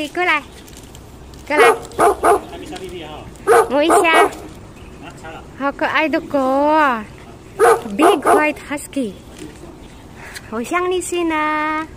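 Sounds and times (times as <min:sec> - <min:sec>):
dog barking: 0:01.5 - 0:02.6, 0:03.4 - 0:04.5, 0:07.6 - 0:08.6.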